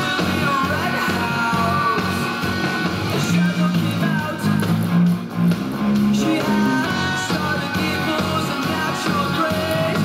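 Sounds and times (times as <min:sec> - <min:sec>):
electric bass held low notes: 0:00.0 - 0:10.0
electric guitars: 0:00.0 - 0:10.0.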